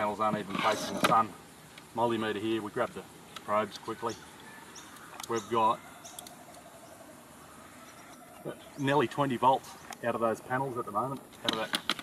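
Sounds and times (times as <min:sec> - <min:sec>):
faint pulsing insect drone: 0:00.0 - 0:12.0.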